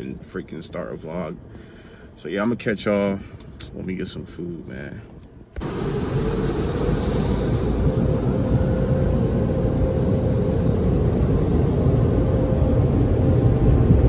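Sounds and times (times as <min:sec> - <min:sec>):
steady hum: 0:00.0 - 0:14.0
car wash rushing noise: 0:05.6 - 0:12.0.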